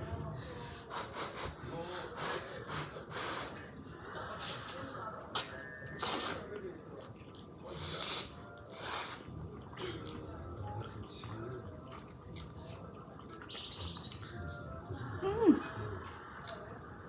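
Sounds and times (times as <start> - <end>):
voices from a tv show: 0.0 - 17.0
person slurping noodles: 6.0 - 6.5, 7.8 - 9.4.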